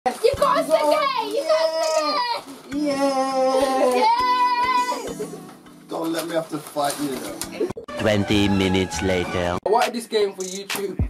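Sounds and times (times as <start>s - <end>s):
child's voice: 0.1s - 5.2s
people talking: 8.0s - 10.1s.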